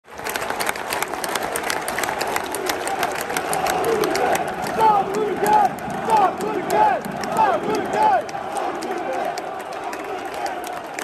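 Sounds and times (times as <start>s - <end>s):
close hand claps: 0.0s - 11.0s
crowd clapping: 0.0s - 11.0s.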